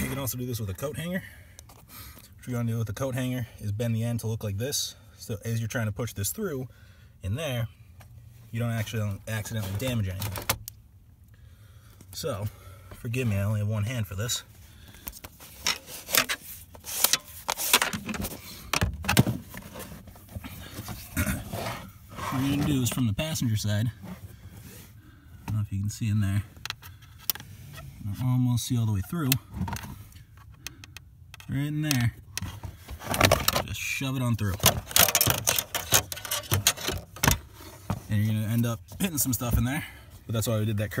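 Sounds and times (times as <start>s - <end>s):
handling noise rustling: 8.4s - 10.6s, 12.0s - 28.3s, 32.0s - 40.4s.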